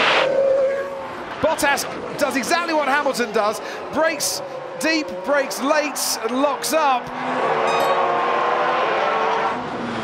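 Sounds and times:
rushing noise: 0:00.0 - 0:01.4
racing car engines at speed: 0:01.0 - 0:10.0.

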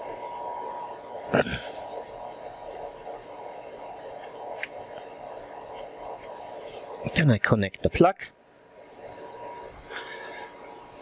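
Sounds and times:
equipment hum: 0:00.0 - 0:11.0.

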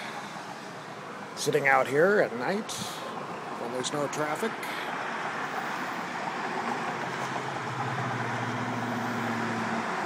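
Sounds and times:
traffic tyre noise: 0:00.0 - 0:10.0
vehicle engine hum: 0:00.0 - 0:10.0.

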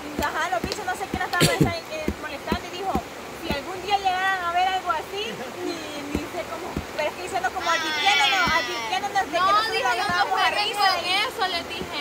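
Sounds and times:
river rushing: 0:00.0 - 0:12.0
voices talking: 0:00.0 - 0:12.0.

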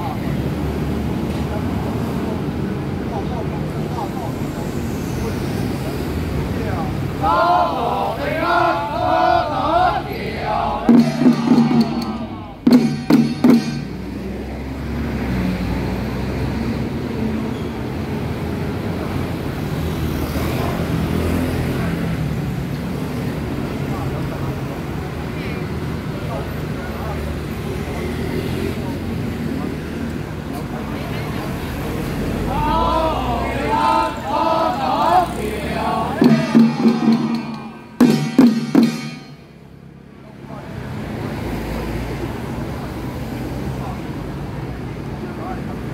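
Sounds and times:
street hubbub: 0:00.0 - 0:45.9
traffic: 0:00.0 - 0:45.9
voices chanting: 0:06.6 - 0:13.9, 0:32.2 - 0:39.4
handheld drum strikes: 0:10.9 - 0:14.2, 0:36.2 - 0:39.5.

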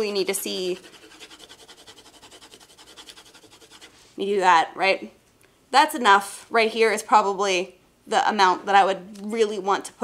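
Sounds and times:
pencil scribbling on paper: 0:00.5 - 0:03.9.

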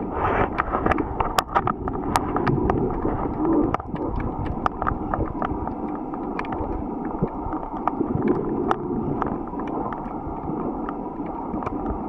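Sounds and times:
low hollow hum: 0:00.0 - 0:12.0
steady low underwater rumble: 0:00.0 - 0:12.0
underwater clicks and crackles: 0:00.0 - 0:12.0.

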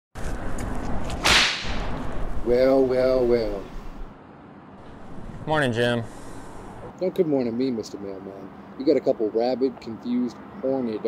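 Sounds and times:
whip-like swoosh: 0:01.1 - 0:02.2.

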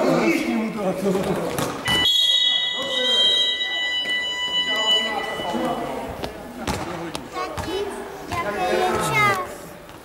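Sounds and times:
basketball bouncing on floor: 0:06.2 - 0:08.5.

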